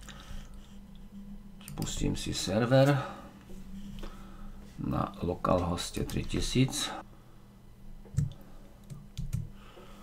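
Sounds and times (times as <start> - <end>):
faint steady hum: 0.0 - 10.0
computer keys clicking: 8.1 - 9.5.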